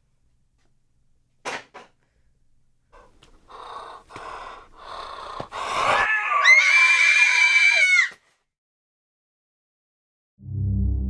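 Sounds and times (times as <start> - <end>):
rasping wheezing breaths: 3.0 - 6.1
high-pitched scream: 6.0 - 8.2.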